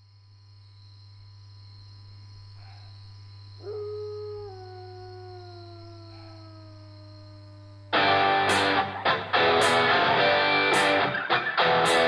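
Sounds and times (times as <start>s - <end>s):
wolf howling: 3.6s - 9.4s.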